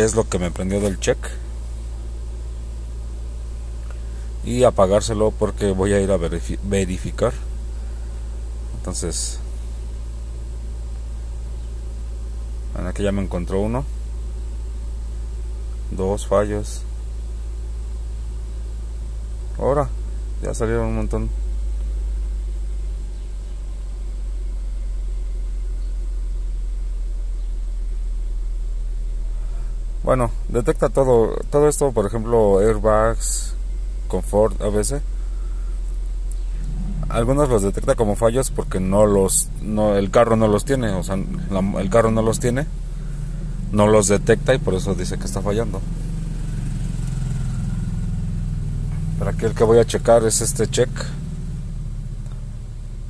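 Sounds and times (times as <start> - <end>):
car engine idling: 0.0 - 53.0.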